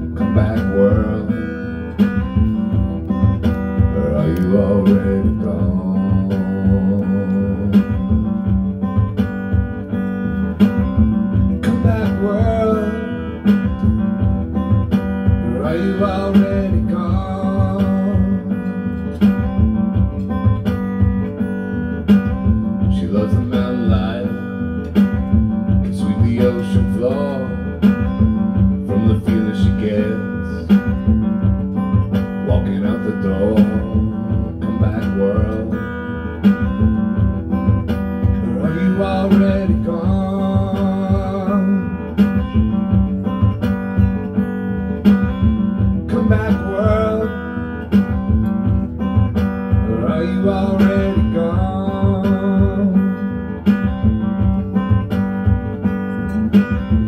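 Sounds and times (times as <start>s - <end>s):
amplified guitar strumming: 0.0s - 57.0s.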